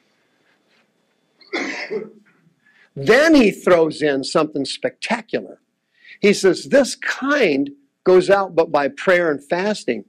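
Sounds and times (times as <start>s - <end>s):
person coughing: 1.4s - 2.4s.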